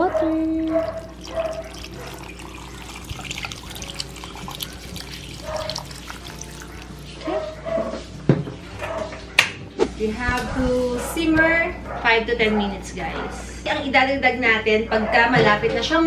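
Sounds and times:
water pouring into a metal pot: 0:00.0 - 0:07.6.

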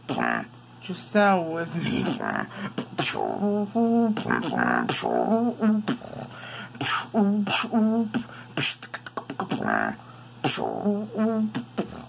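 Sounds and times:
beatboxing: 0:00.0 - 0:00.5, 0:01.9 - 0:12.0.

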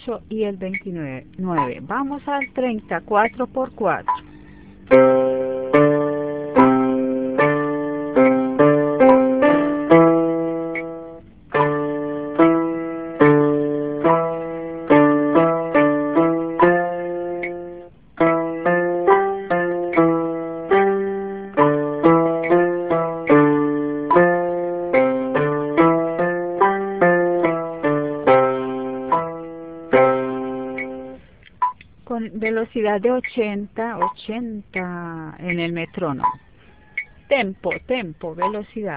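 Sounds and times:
electronic keyboard piano notes: 0:00.6 - 0:31.3, 0:32.4 - 0:38.9.

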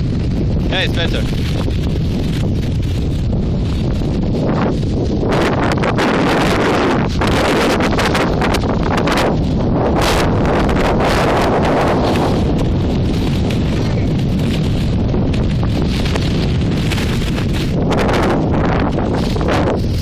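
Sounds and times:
gusty wind buffeting microphone: 0:00.0 - 0:20.0.

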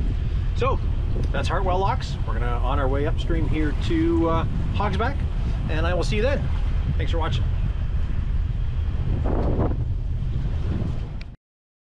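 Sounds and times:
wind buffeting microphone: 0:00.0 - 0:11.4.

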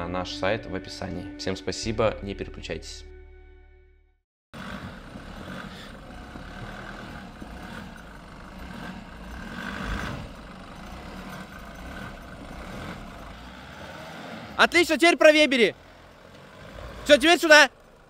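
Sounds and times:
suv engine running at low revs: 0:04.6 - 0:18.0.

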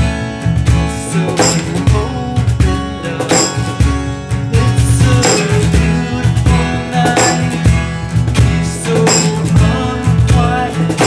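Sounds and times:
acoustic guitar strumming chords: 0:00.0 - 0:11.0
cajon beat: 0:00.0 - 0:11.0.

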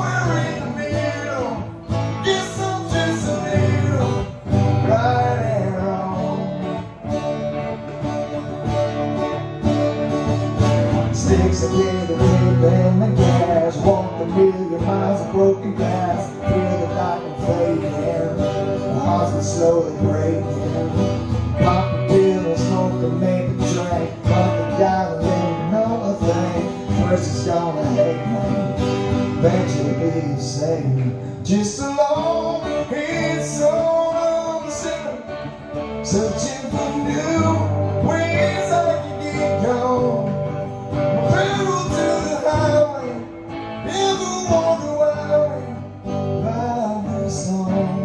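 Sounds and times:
electric guitar: 0:00.0 - 0:48.0
strummed acoustic guitar: 0:00.0 - 0:48.0.

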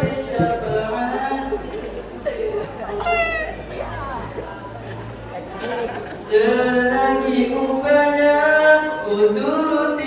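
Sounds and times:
young man singing a cappella: 0:00.0 - 0:01.7, 0:06.2 - 0:10.0.

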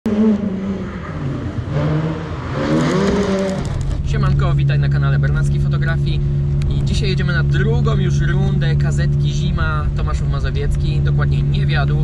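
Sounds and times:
car engine revving: 0:00.1 - 0:12.0.

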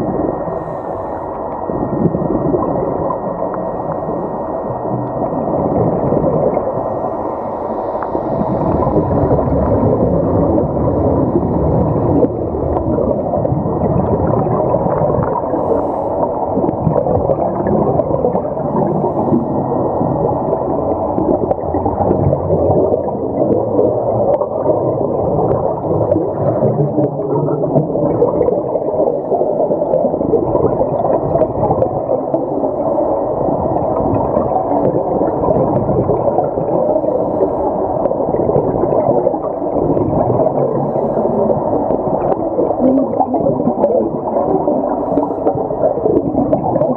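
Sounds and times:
muffled underwater rumble and gurgle: 0:00.0 - 0:46.9.

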